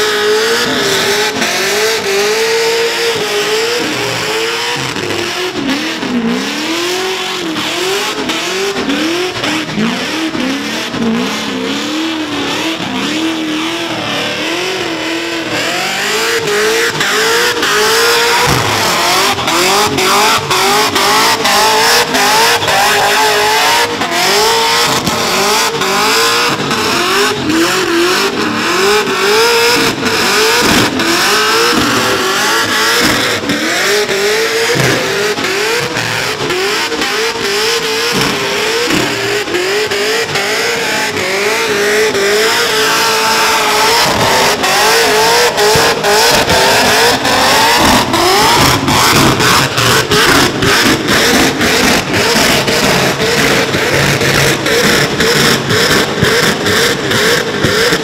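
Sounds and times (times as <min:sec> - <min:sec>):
truck engine revving: 0:00.0 - 0:58.0.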